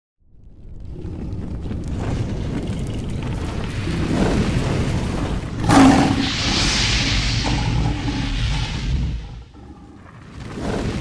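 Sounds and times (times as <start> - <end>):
low rumble: 0.3 - 11.0
whoosh: 3.8 - 11.0.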